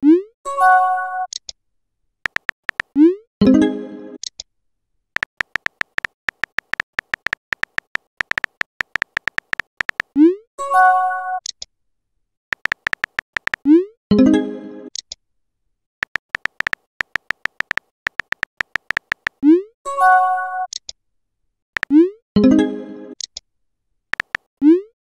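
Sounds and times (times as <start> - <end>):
phone keyboard key taps: 2.3 - 2.9, 5.2 - 10.1, 12.5 - 13.6, 16.0 - 19.4, 24.2 - 24.5.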